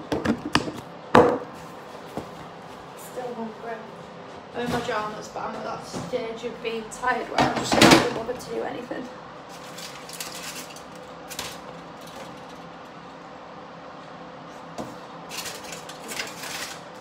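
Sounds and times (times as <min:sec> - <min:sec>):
faint appliance hum: 0:00.0 - 0:17.0.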